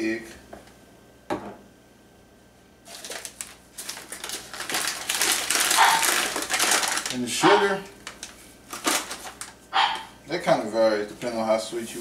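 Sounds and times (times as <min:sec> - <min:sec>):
paper bag crinkling: 0:02.8 - 0:09.6.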